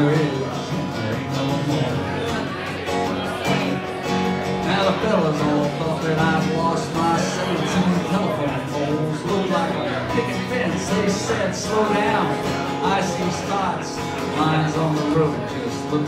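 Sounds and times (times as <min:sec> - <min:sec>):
acoustic guitar country tune: 0:00.0 - 0:16.0.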